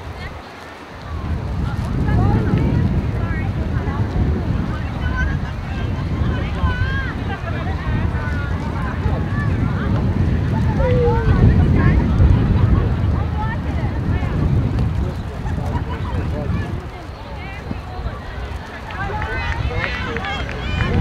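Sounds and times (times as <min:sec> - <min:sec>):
wind buffeting microphone: 0:00.0 - 0:21.0
distant shouts and calls: 0:04.5 - 0:12.1, 0:15.3 - 0:21.0.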